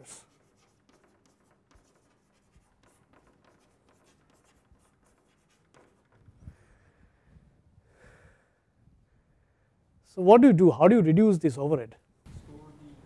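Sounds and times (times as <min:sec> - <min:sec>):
chalk tapping and scratching: 0:00.0 - 0:06.4.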